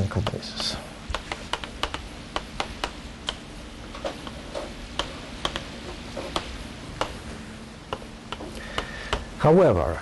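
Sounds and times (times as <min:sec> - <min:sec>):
chalk clicking on blackboard: 0:00.1 - 0:03.4, 0:04.0 - 0:07.2, 0:07.9 - 0:09.3.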